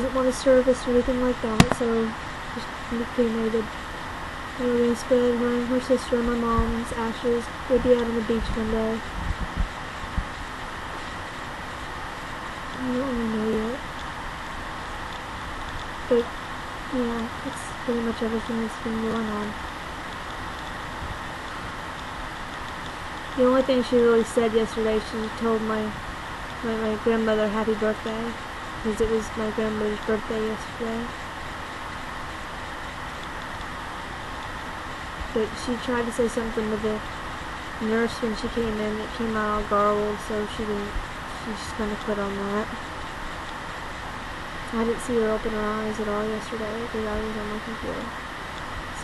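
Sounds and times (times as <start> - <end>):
microphone hiss: 0.0 - 49.0
soft low thumps: 7.8 - 10.5.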